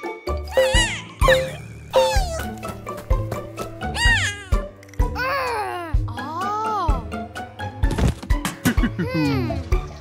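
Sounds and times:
cartoon background music: 0.0 - 10.0
squeaky cartoon voice crying: 0.5 - 2.5, 3.9 - 4.6.

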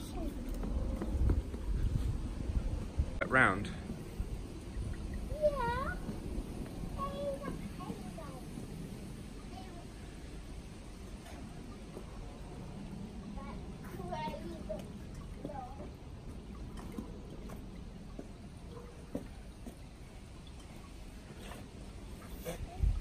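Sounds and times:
outdoor background noise: 0.0 - 23.0.

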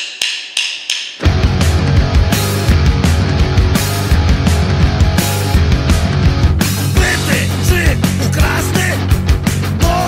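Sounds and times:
drumstick count-in strikes: 0.0 - 3.7
punk rock band playing: 1.2 - 10.0.

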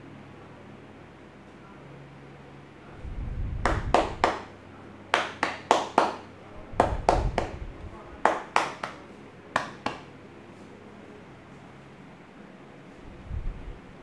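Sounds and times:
hand slaps on back: 3.6 - 4.5, 5.2 - 7.6, 8.3 - 9.0, 9.6 - 10.1.

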